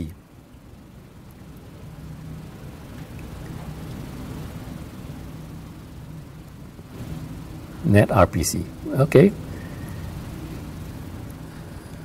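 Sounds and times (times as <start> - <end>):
faint hiss: 0.0 - 12.0
low room hum: 0.0 - 12.0.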